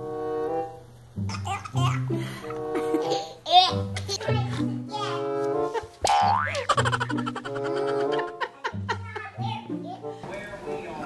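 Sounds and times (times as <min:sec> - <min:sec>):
background music: 0:00.0 - 0:11.0
cartoon boing sound effect: 0:06.0 - 0:07.8.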